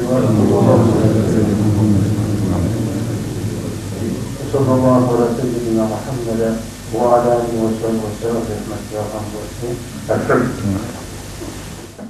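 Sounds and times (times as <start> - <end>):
background hiss: 0.0 - 12.0
steady low hum: 0.0 - 12.0.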